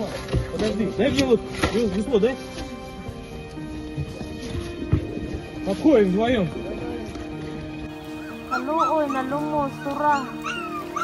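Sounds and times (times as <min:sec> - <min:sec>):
background music: 0:00.0 - 0:11.0
dog whimpering and yelping: 0:08.2 - 0:11.0.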